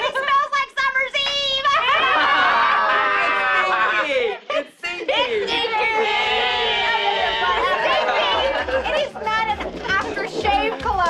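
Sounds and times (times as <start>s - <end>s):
overlapping voices: 1.2s - 11.0s.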